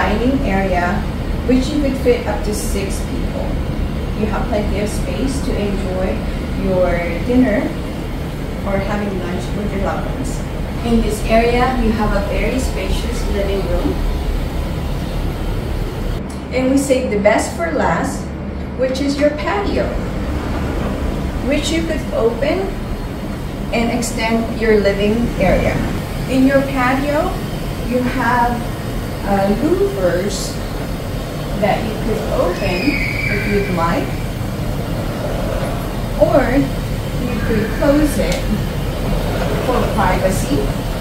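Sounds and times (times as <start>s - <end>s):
low city rumble: 0.0s - 41.0s
low rushing background noise: 0.0s - 41.0s.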